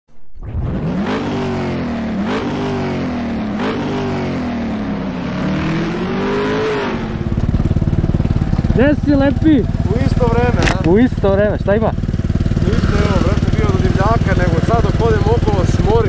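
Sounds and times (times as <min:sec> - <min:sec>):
engine revving: 0:00.4 - 0:16.0
engine running near idle: 0:01.1 - 0:16.0.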